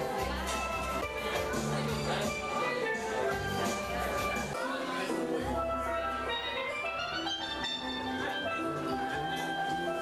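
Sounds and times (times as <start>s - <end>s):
steel pan melody: 0.0s - 10.0s.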